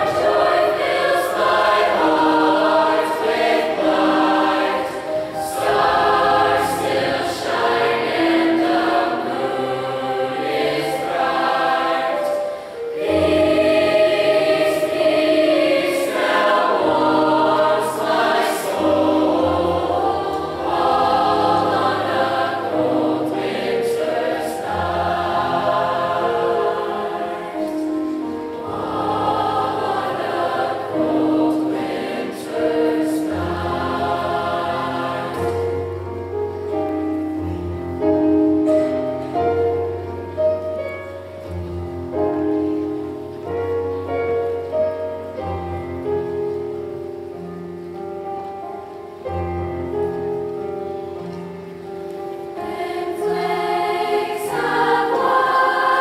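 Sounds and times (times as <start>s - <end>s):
choir singing in harmony: 0.0s - 48.3s, 49.1s - 56.0s.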